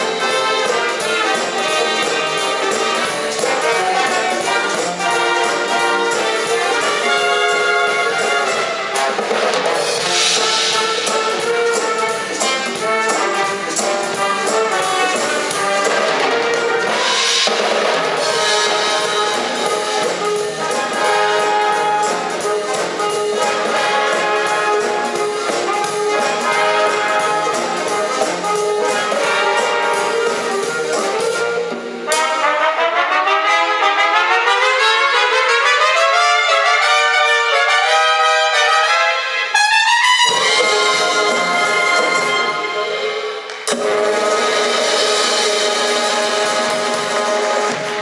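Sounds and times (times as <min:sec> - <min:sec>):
big band playing swing: 0:00.0 - 0:48.0.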